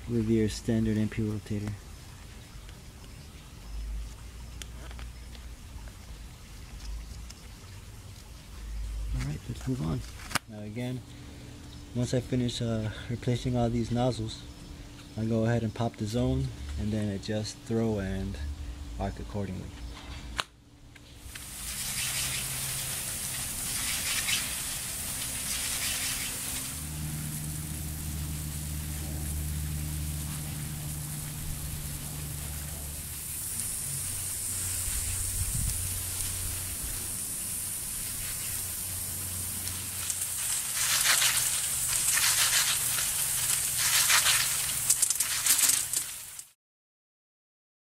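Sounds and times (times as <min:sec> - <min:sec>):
water sprinklers spraying: 0:00.0 - 0:11.1, 0:21.2 - 0:46.6
low hum: 0:05.5 - 0:46.1.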